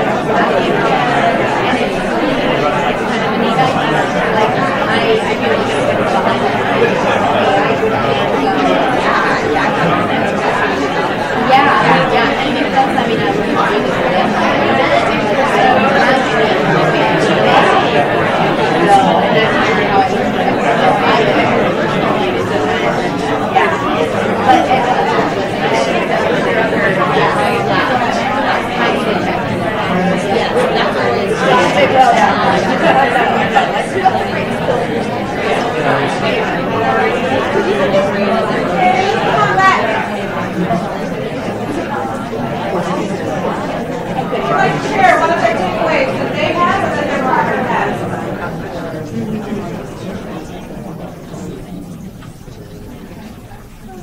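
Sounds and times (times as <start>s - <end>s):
many overlapping conversations: 0.0s - 54.0s.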